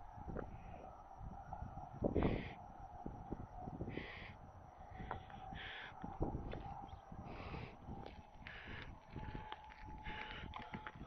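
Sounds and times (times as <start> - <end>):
faint wind rumble: 0.0 - 11.0.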